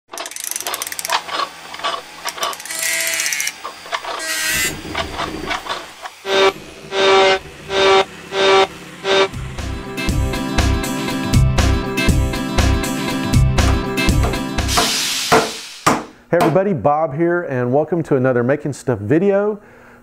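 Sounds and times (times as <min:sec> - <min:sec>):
mechanical clicks and ratcheting: 0:00.1 - 0:06.2
motor whirs: 0:00.1 - 0:09.6
guitar music: 0:09.0 - 0:14.8.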